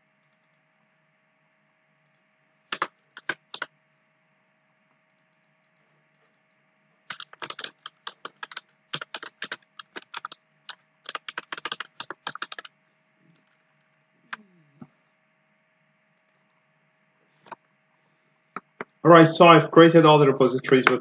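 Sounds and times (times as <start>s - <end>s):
typing on computer keyboard: 2.7s - 3.7s, 7.1s - 12.7s.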